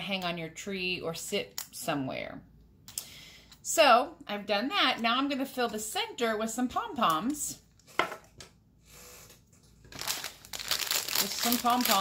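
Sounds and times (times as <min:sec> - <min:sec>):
plastic bag crinkling: 0:09.7 - 0:12.0.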